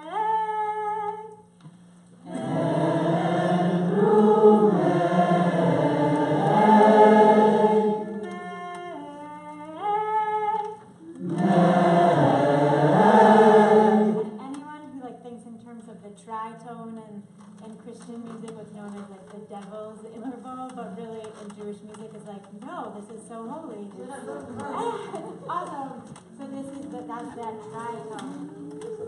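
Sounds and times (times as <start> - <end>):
group singing together: 2.2 - 8.6, 11.0 - 14.4.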